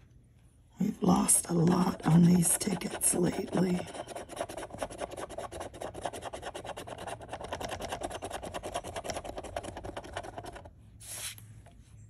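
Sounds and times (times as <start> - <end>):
coin scratching a ticket: 1.5 - 10.7.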